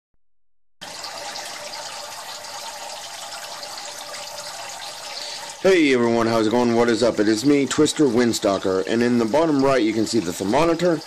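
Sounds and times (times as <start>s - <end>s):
water splashing into tank: 0.8s - 11.0s.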